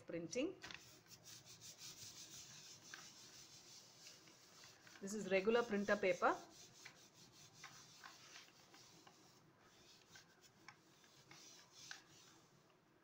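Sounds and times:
hand rubbing paper: 0.6 - 12.7.

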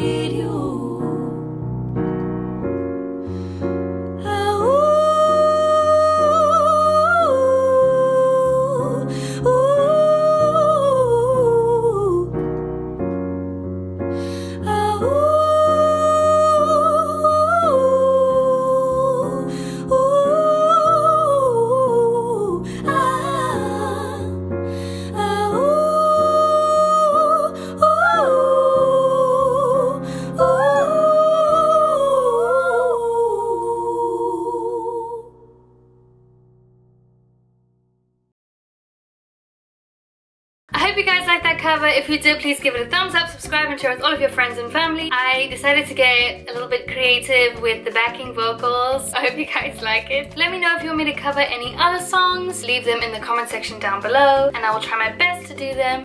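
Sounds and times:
woman singing with vibrato: 0.0 - 1.3, 4.2 - 12.3, 14.6 - 24.4, 25.0 - 35.3
digital piano chords: 0.0 - 38.0
quick breath: 3.2 - 3.8.

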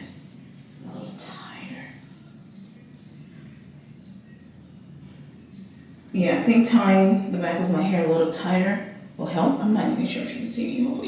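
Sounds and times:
swishing rustle: 0.0 - 3.7.

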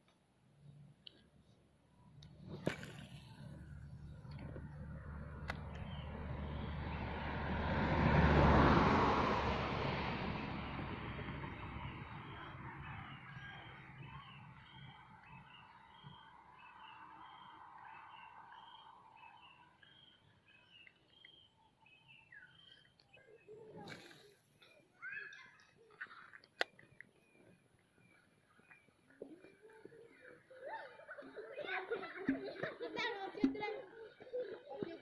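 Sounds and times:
bird chirping: 11.5 - 23.9.

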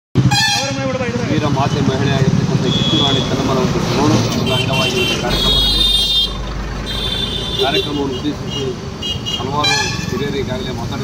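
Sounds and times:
vehicle horns honking: 0.2 - 1.1, 2.6 - 3.6, 4.3 - 10.6
passing vehicle engine rumble: 0.2 - 11.0.

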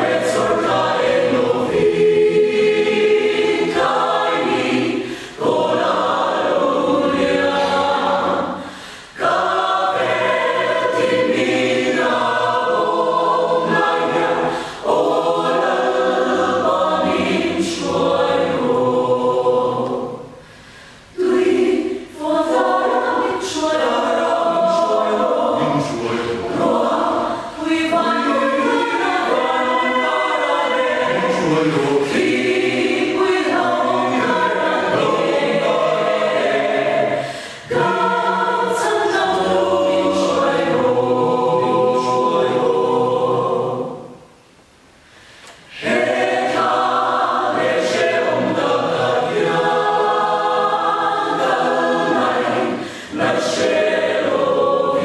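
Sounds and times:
mixed choir singing a hymn: 0.0 - 44.3, 45.6 - 55.0.

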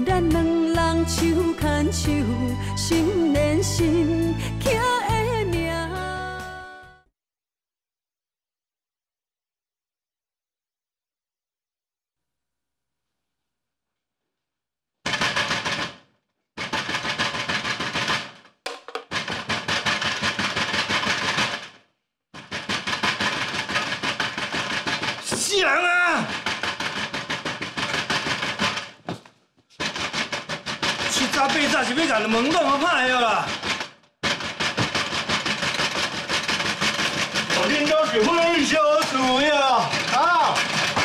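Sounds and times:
pounding on glass sliding door: 15.0 - 21.8, 22.4 - 41.0.

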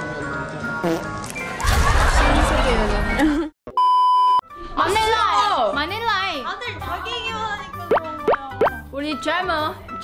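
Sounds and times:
playful background music: 4.5 - 10.0.

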